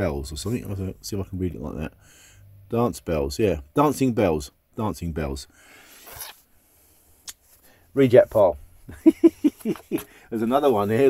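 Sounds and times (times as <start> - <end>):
record sleeve sliding and rustling: 6.0 - 6.5.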